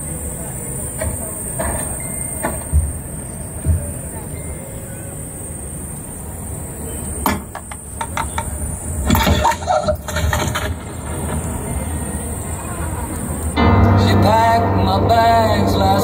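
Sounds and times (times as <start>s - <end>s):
murmuring voices: 0.0s - 9.1s, 9.7s - 16.0s.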